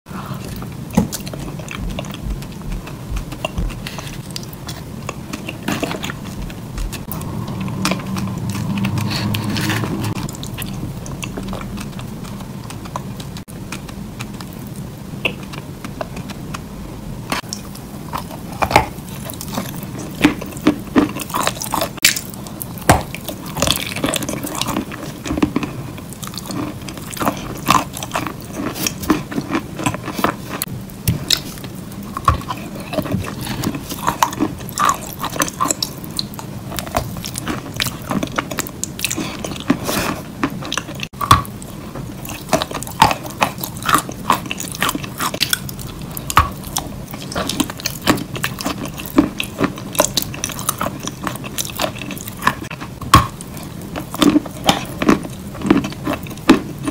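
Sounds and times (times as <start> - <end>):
low steady hum: 0.1 - 56.9
crunching and chewing: 0.2 - 56.9.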